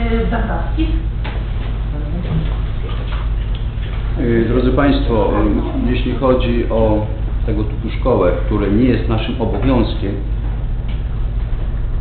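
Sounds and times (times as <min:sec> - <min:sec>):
low hum through sound system: 0:00.0 - 0:12.0.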